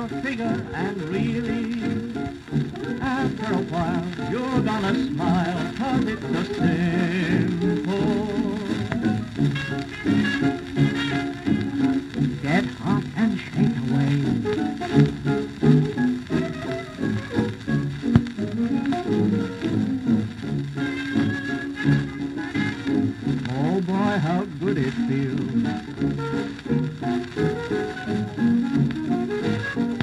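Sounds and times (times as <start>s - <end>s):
dance band record playing: 0.0s - 30.0s
record surface noise: 0.0s - 30.0s.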